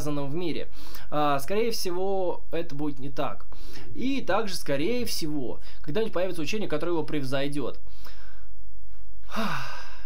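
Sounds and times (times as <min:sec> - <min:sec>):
steady low hum: 0:00.0 - 0:10.0
man sighing: 0:09.2 - 0:10.0.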